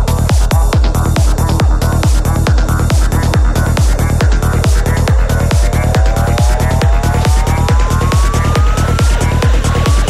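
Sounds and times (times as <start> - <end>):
four-on-the-floor kick drum: 0.0 - 10.0
rising synth tones: 4.2 - 10.0.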